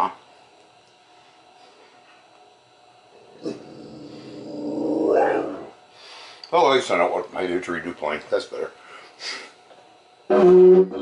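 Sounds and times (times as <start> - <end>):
dog grumbling: 3.2 - 5.8.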